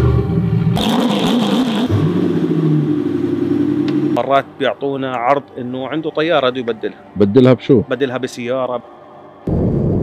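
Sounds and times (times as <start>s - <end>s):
vehicle engine revving: 0.0s - 4.3s
low engine sound: 0.0s - 4.5s.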